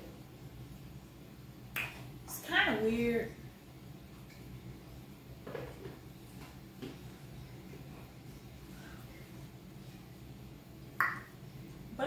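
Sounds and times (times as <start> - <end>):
woman speaking: 2.3 - 3.4.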